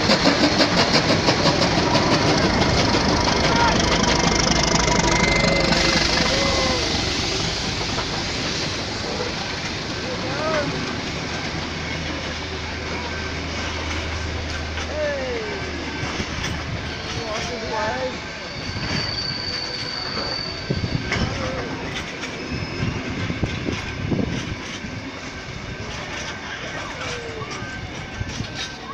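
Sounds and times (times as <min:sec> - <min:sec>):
train carriages rumbling past: 0:00.0 - 0:28.9
high wheel squeal: 0:01.6 - 0:09.4, 0:15.5 - 0:23.7.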